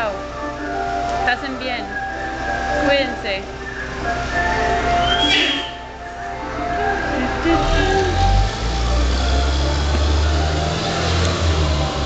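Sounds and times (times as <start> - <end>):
truck jingle music: 0.0 - 12.0
garbage truck engine rumble: 1.9 - 12.0.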